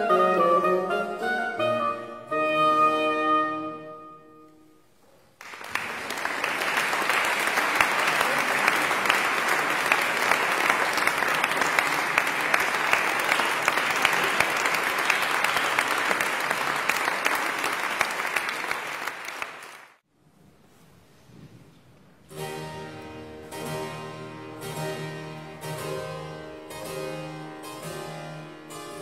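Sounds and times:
oboe note ringing in hall: 0.0 - 5.0
audience applause: 5.4 - 20.0.

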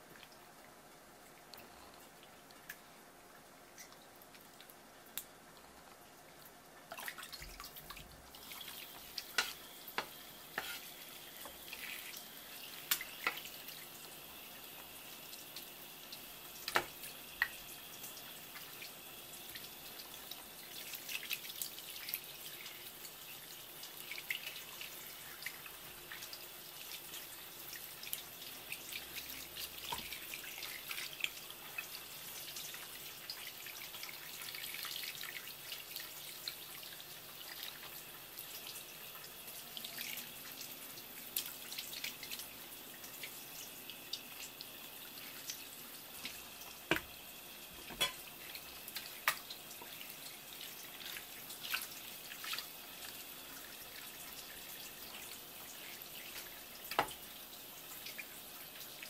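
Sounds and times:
tap water running: 2.2 - 59.0.

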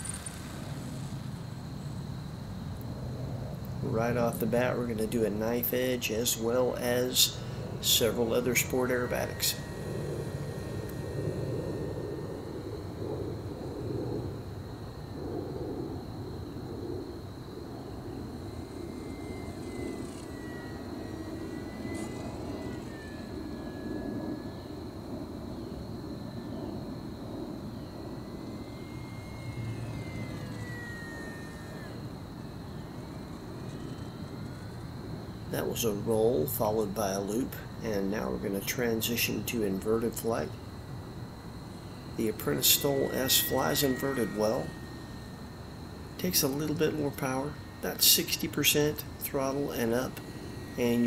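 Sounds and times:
electric motor and propeller whine: 0.0 - 51.0
low rushing background: 0.0 - 51.0.

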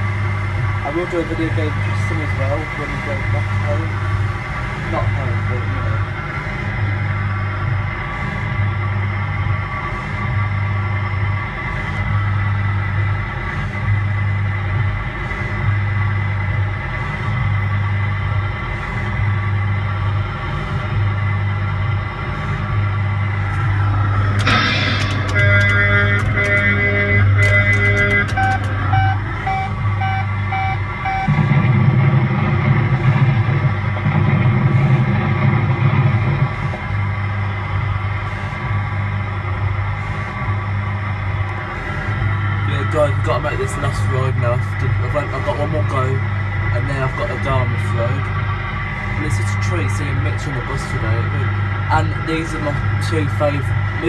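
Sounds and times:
pulsing low hum: 0.0 - 54.0
kiddie ride music: 23.4 - 31.4
short electronic beeps: 25.3 - 31.4
clatter of clicks: 27.4 - 28.8.

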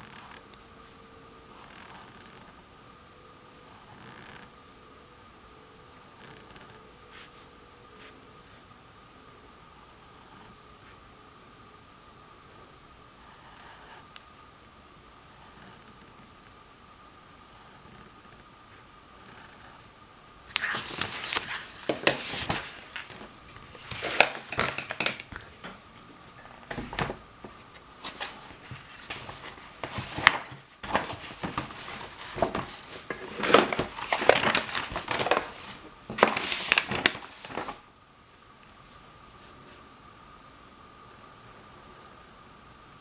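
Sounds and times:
paper crinkling and rustling: 20.5 - 25.6, 26.6 - 37.9.

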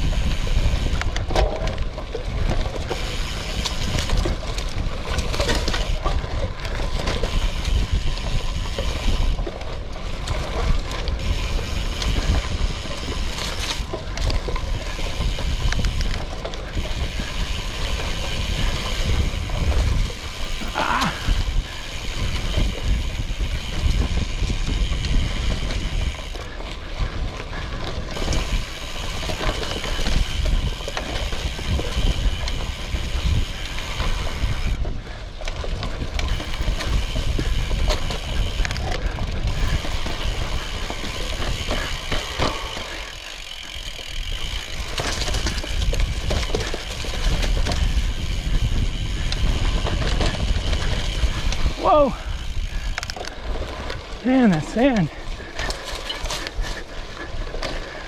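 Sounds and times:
bike rattling and clicking: 0.0 - 58.0
bike tyres crunching over leaves: 0.0 - 58.0
wind rumble on microphone: 0.0 - 58.0.

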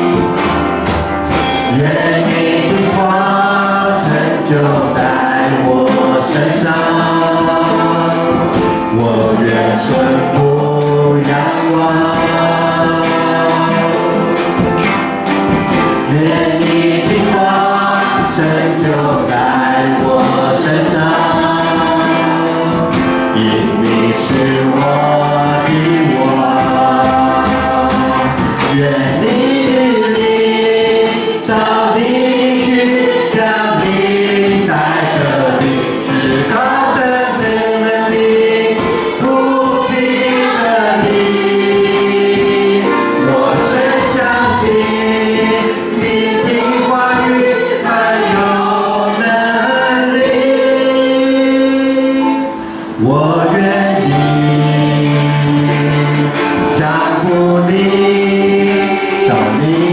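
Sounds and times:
digital piano: 0.0 - 59.9
electronic drum kit: 0.0 - 59.9
guitar: 0.0 - 59.9
keyboard: 0.0 - 59.9
man and woman singing together: 1.5 - 14.6, 16.0 - 59.9.

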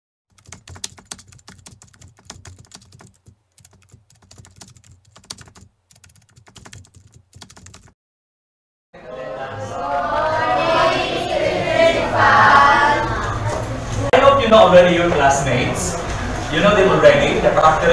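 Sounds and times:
computer keyboard typing: 0.3 - 8.0.

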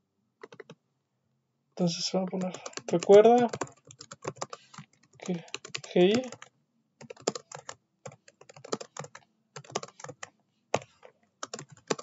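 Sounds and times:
computer keyboard typing: 0.4 - 0.8, 2.3 - 12.0.

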